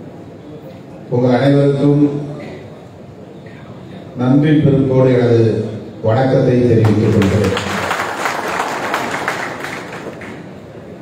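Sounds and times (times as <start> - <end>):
audience applauding: 6.8 - 10.6.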